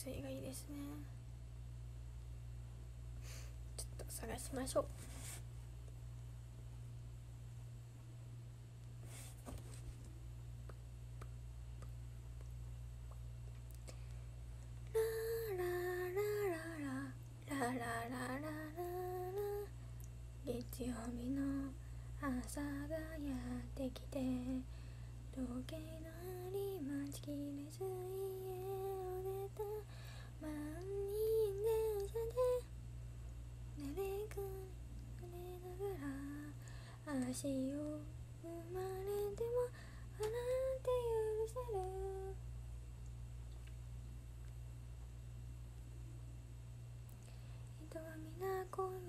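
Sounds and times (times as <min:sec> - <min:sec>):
low background hum: 0:00.0 - 0:49.0.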